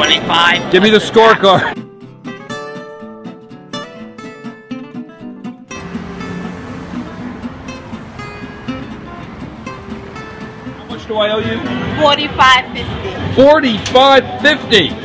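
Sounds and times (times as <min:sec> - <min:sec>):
acoustic guitar melody: 0:01.5 - 0:13.4.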